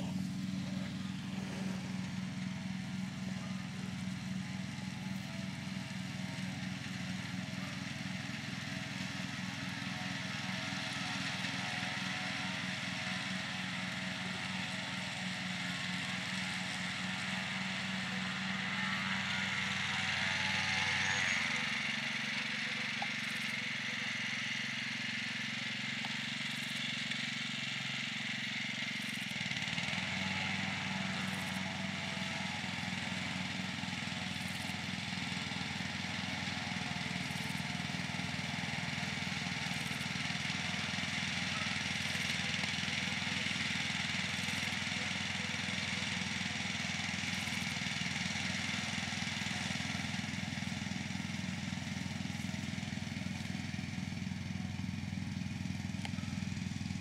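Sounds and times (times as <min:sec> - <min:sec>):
riding lawn mower engine: 0:00.0 - 0:57.0.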